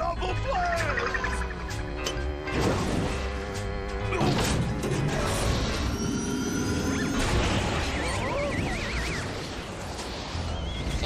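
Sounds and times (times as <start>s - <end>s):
background music: 0.0s - 11.0s
warbling whistle-like tone: 5.9s - 11.0s.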